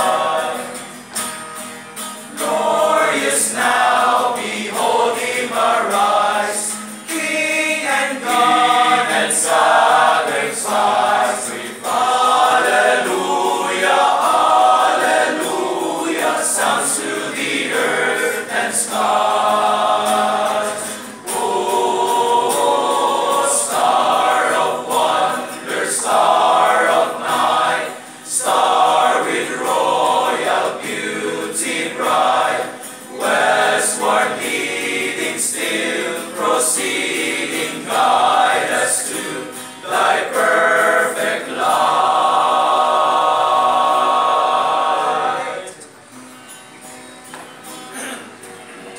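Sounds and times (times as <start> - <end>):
male choir singing a carol: 0.0 - 1.3, 2.0 - 46.0.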